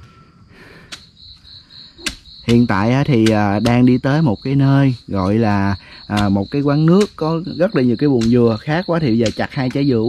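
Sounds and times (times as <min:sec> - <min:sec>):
cricket chirping: 0:00.0 - 0:10.0.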